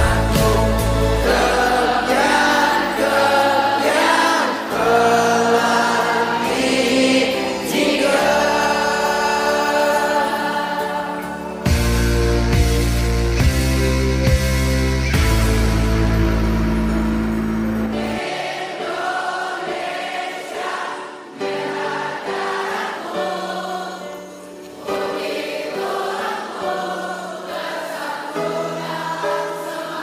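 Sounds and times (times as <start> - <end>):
girls' choir singing in unison: 0.0 - 11.7, 18.0 - 30.0
loud held low chord: 11.6 - 18.2.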